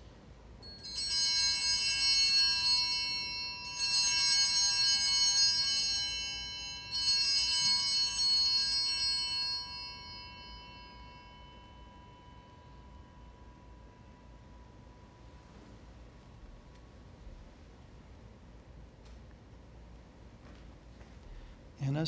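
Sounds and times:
altar bells ringing: 0.6 - 15.6.

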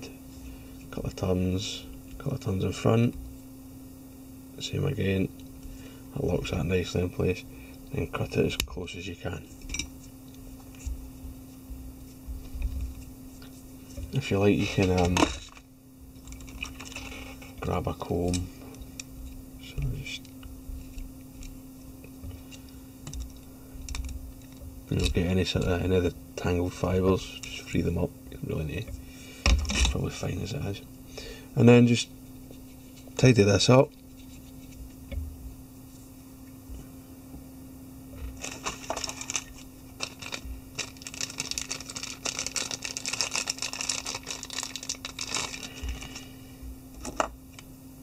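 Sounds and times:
steady low hum: 0.0 - 48.0
comb clicking and scratching: 12.1 - 25.8, 38.2 - 46.3
materials scratching and rattling: 16.2 - 17.8, 38.2 - 46.2.

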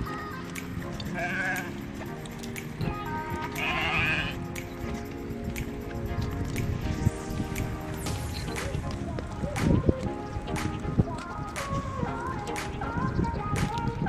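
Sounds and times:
background music: 0.0 - 14.0
sheep bleating: 1.0 - 2.2, 3.1 - 4.5.

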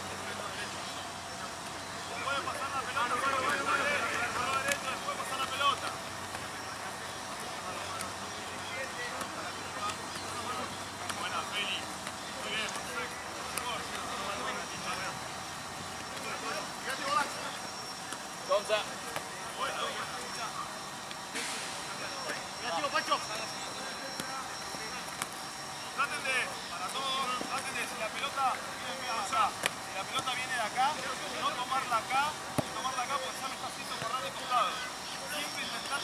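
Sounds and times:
distant people calling and talking: 0.0 - 36.0
outdoor background noise: 0.0 - 36.0.

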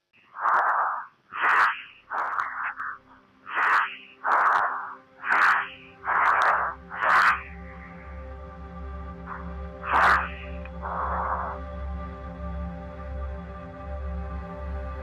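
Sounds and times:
soft music with low hum: 0.1 - 15.0
heavy fast breathing in helmet: 0.4 - 8.0, 9.3 - 11.7.

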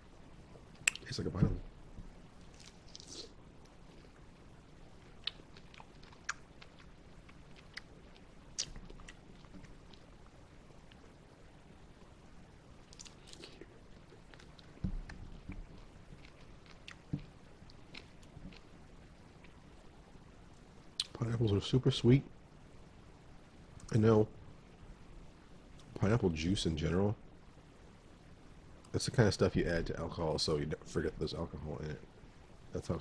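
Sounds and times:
person chewing fruit: 5.1 - 10.1, 12.9 - 18.8.

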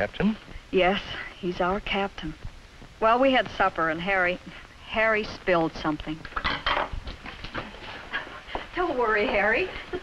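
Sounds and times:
dishes and cutlery clattering: 6.4 - 7.0.

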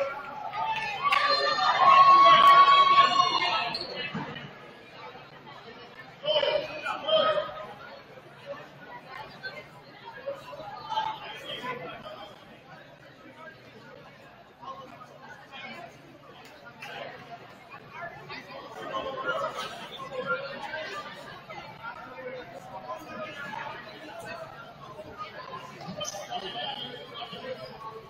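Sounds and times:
echoing chatter of many voices: 0.0 - 28.0.

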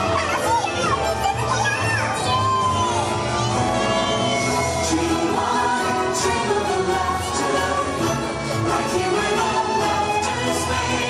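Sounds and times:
parade music over loudspeakers: 0.0 - 11.0.

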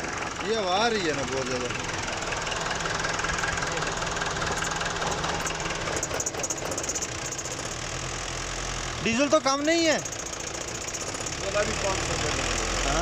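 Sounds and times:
diesel engine idling: 0.0 - 13.0.

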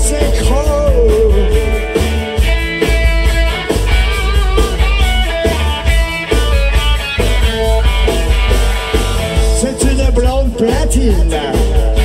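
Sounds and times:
bass guitar: 0.0 - 12.0
drum kit beat: 0.0 - 12.0
electric guitar: 0.0 - 12.0.

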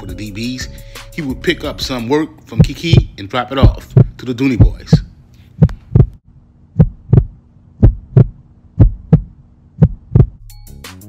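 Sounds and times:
music: 0.0 - 2.2, 10.4 - 11.0
faint low hum: 2.3 - 10.4
heartbeat double thumps: 2.6 - 10.4.

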